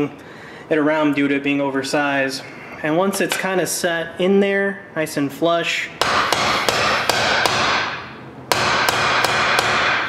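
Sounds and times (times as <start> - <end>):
hammer ringing on metal: 6.0 - 10.0.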